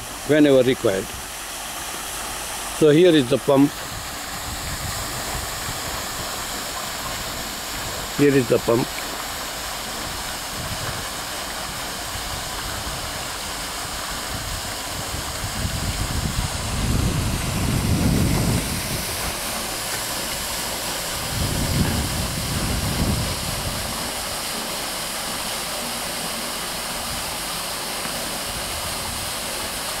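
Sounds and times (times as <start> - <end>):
water pouring from a pipe: 0.0 - 30.0.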